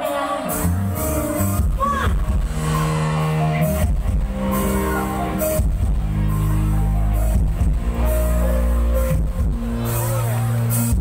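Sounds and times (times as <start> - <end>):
loud music with heavy bass: 0.0 - 11.0.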